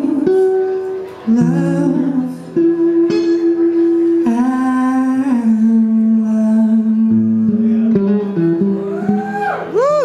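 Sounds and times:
man singing wordless notes: 0.0 - 8.5
resonator guitar: 0.0 - 10.0.

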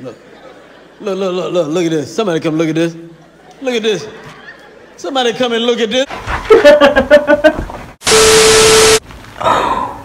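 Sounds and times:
steady tone: 8.0 - 9.0
tv static burst: 8.0 - 9.3.

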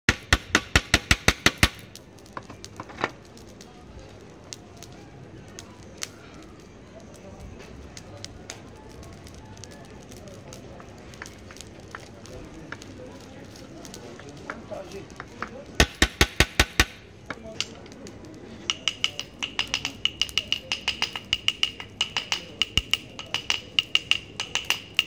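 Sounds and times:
low background murmur: 0.1 - 25.0
metal utensil tapping clay pot: 18.7 - 25.0.

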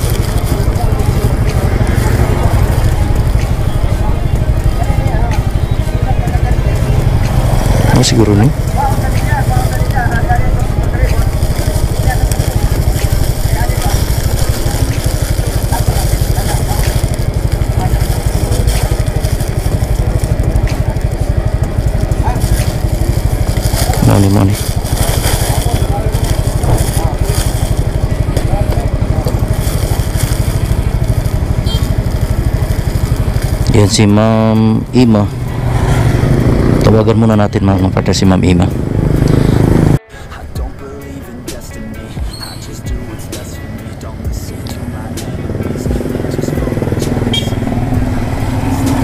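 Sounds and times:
scooter engine idling: 0.0 - 49.0
plastic bags crinkling: 8.6 - 34.1.

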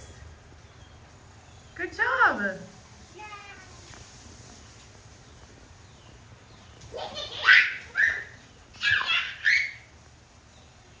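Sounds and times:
faint steady hiss: 0.0 - 11.0
child squealing with laughter: 6.9 - 9.9.

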